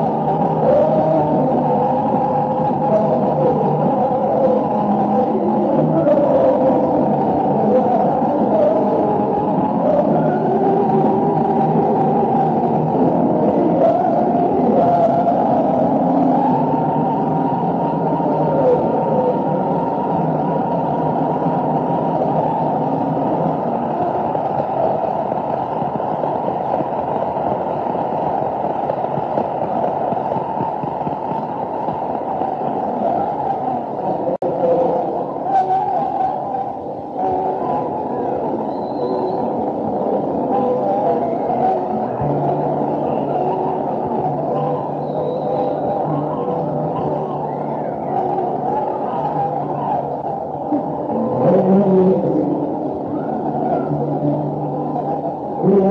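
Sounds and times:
crowd noise: 0.0s - 55.9s.

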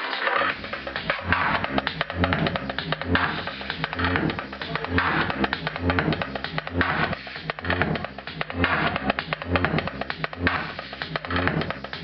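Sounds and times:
techno dance music: 0.0s - 12.0s.

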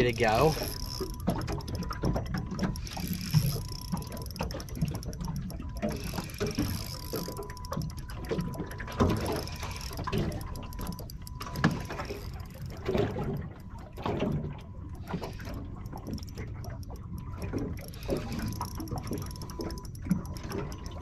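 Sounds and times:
fishing reel gears clicking: 0.0s - 21.0s.

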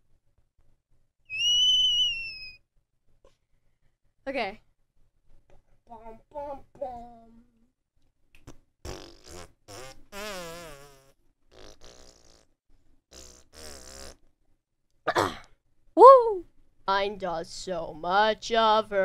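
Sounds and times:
buzzing sputtering mouth sounds: 8.4s - 14.3s.

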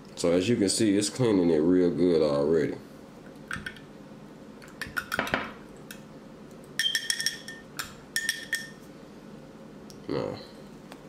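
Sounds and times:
metal pieces tapping on glass: 6.8s - 8.8s.

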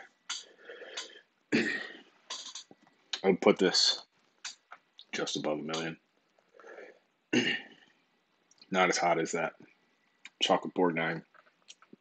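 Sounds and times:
man clearing his throat: 1.5s - 2.0s, 7.3s - 7.7s.

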